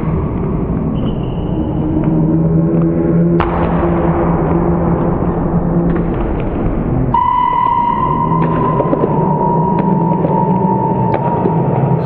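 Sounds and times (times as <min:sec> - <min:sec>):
steady high-pitched tone: 0:07.1 - 0:12.0.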